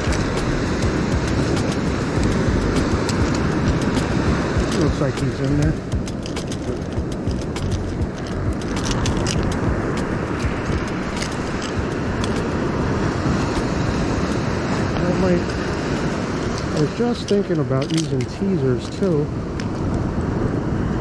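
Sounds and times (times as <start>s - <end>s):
surf washing up beach: 0.0s - 21.0s
small metallic clicks and taps: 1.2s - 12.6s, 16.4s - 20.0s.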